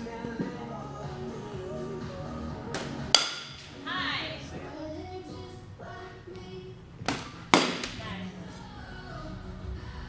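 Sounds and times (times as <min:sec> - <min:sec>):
background music: 0:00.0 - 0:10.0
bat hitting ball: 0:02.8 - 0:03.7, 0:07.0 - 0:08.0.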